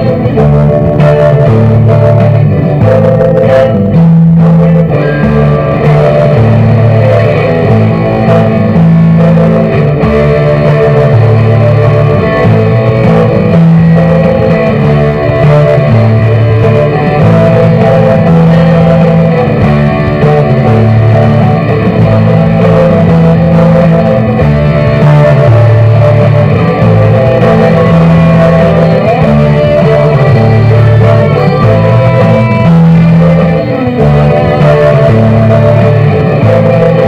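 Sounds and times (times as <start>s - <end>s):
electric guitar playing rock: 0.0s - 37.0s
low repeating bass notes: 0.0s - 37.0s.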